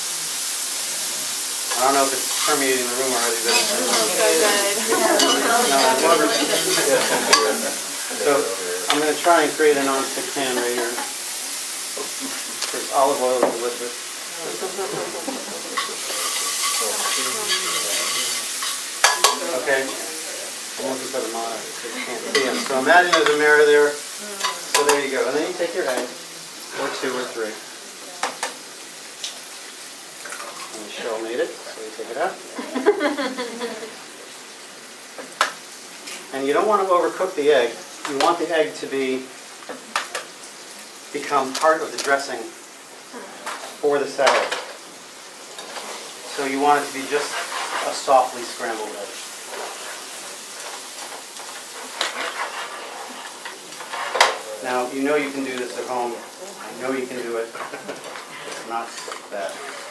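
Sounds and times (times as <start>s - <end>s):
meat sizzling in a pan: 0.0s - 59.9s
spoon stirring in pan: 1.6s - 2.8s, 3.4s - 8.2s, 10.1s - 12.8s, 14.9s - 20.7s, 22.1s - 25.1s, 46.7s - 54.5s.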